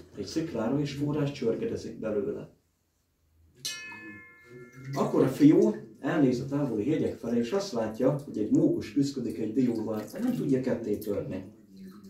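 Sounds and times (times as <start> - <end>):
metal singing bowl ringing: 3.7 - 5.6.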